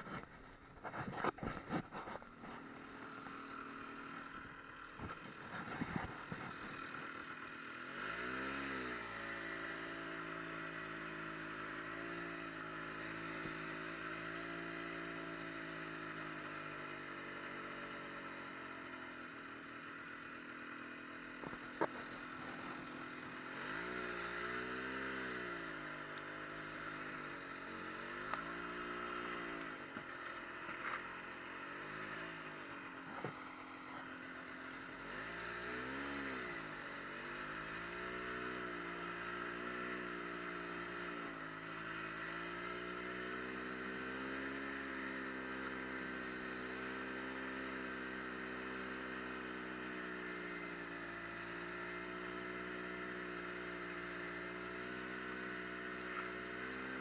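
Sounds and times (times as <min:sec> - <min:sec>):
snowmobile engine revving: 0:00.0 - 0:18.8, 0:21.3 - 0:47.6.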